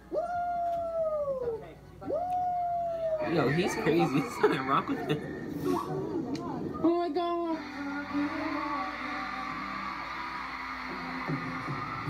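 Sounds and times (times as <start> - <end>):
young man whooping: 0.1 - 6.0.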